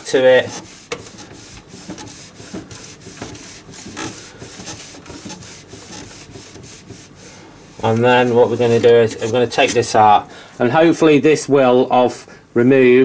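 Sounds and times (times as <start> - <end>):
rubbing and scraping: 0.0 - 10.9.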